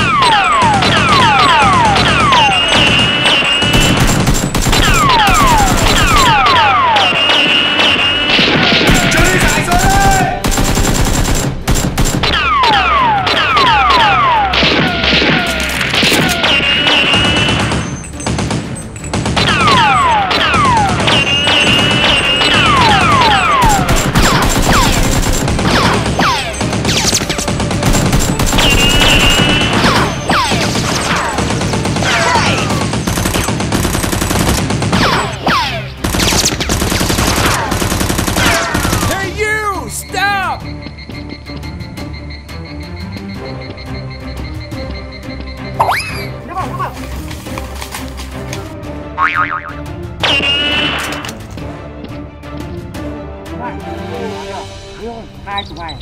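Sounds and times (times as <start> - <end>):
background music: 0.0 - 56.0
automatic gunfire: 0.6 - 6.5, 7.1 - 12.4, 19.2 - 35.3, 36.0 - 39.1.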